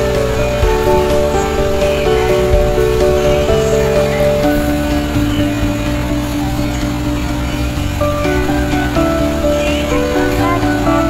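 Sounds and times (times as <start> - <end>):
sustained background music: 0.0 - 11.0.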